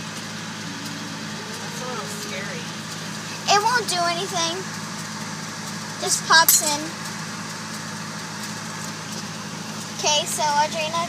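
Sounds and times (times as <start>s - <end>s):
car engine idling: 0.0s - 11.0s
faint talk: 0.6s - 4.5s.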